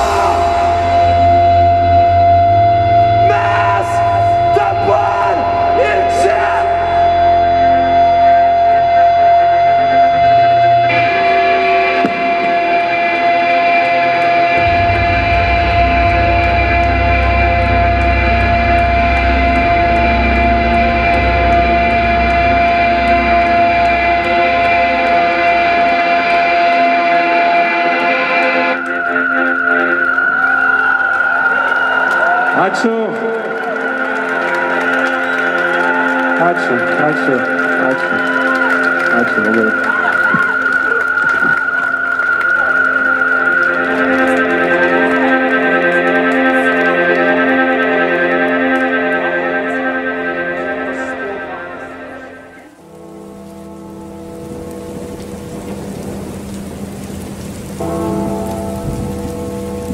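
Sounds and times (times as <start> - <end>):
deep bass drone: 0.0 - 59.9
effected guitar tones: 0.0 - 59.9
keyboard drone: 0.0 - 59.9.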